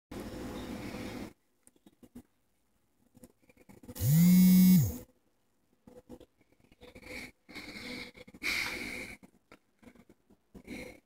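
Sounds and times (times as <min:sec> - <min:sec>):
soft breathy sounds: 0:05.9 - 0:11.0.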